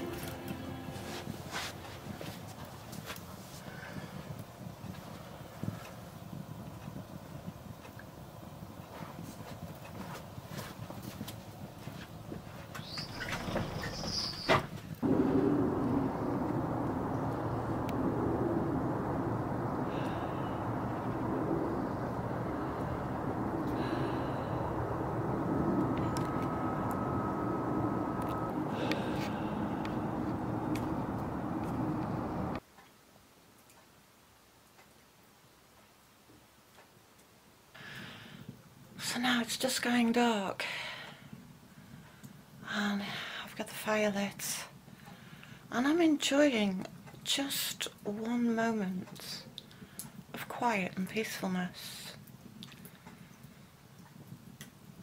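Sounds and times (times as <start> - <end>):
loud steady noise: 0.0 - 2.6, 15.0 - 32.6
wood fire crackling: 0.0 - 32.6, 46.6 - 55.0.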